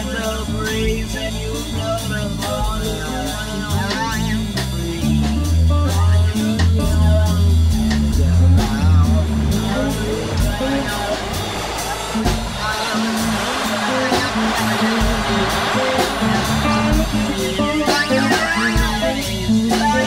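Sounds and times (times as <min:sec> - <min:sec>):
band playing: 0:00.0 - 0:20.0
drum hits: 0:07.8 - 0:20.0.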